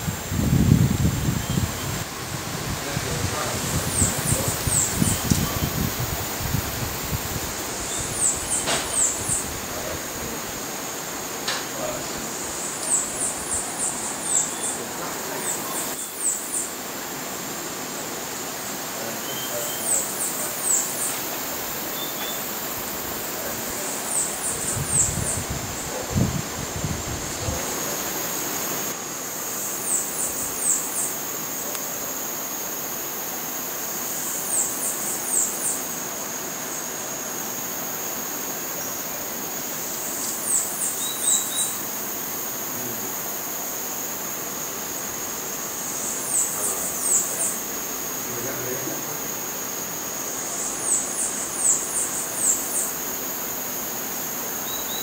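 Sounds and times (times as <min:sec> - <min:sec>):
high insect drone: 0:00.0 - 0:55.0.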